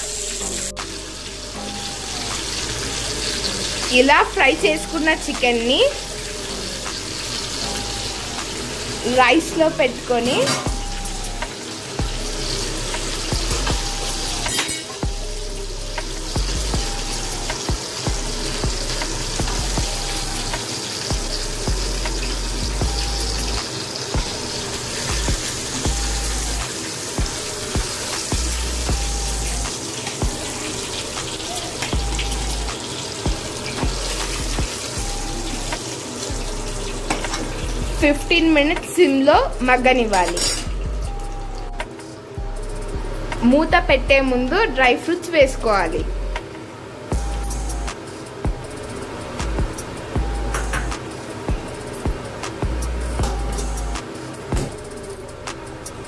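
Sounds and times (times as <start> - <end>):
chicken sizzling in oil: 0.0 - 42.4.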